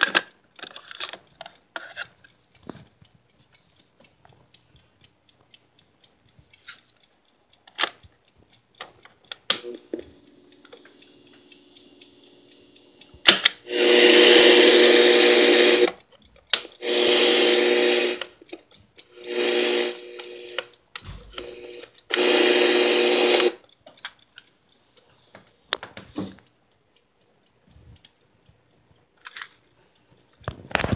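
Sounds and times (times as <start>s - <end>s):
tape motor whirring: 9.5s - 16.0s, 16.8s - 18.4s, 19.0s - 23.6s.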